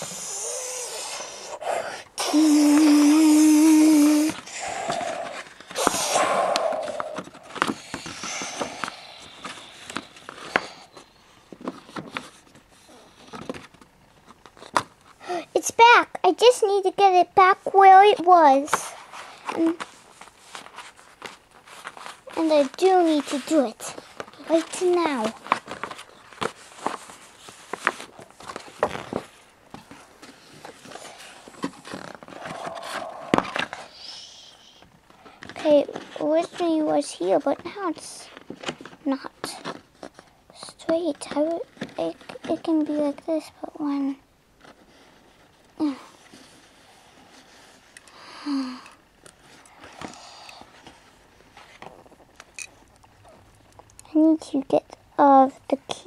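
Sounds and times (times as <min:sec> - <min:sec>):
handling and rustling noises: 0:02.2 - 0:34.2, 0:34.8 - 0:56.0
short breathy voice sound: 0:32.4 - 0:34.8.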